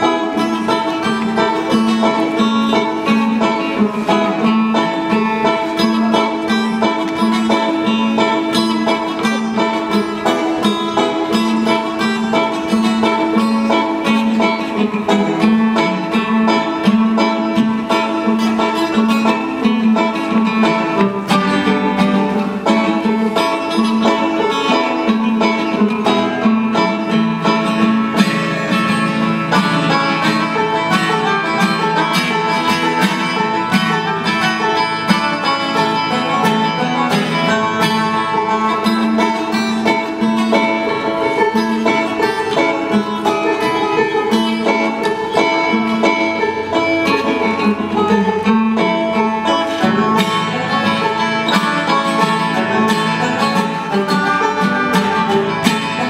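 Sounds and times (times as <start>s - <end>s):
acoustic guitar: 0.0s - 56.0s
banjo picking: 0.0s - 56.0s.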